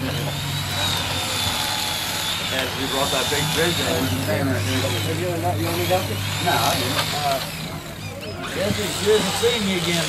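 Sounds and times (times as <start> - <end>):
electric knife motor whine: 0.0 - 10.0.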